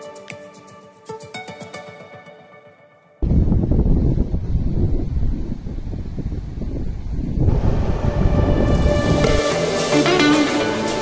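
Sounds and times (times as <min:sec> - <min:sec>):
background music: 0:00.0 - 0:03.2, 0:07.5 - 0:11.0
wind buffeting microphone: 0:03.2 - 0:09.5.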